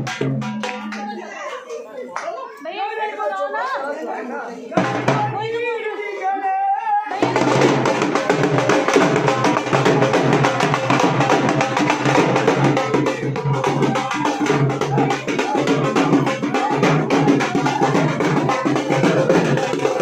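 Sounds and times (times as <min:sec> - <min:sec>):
loud music with fast drumming: 0:00.0 - 0:00.9, 0:07.2 - 0:20.0
people's voices: 0:00.0 - 0:20.0.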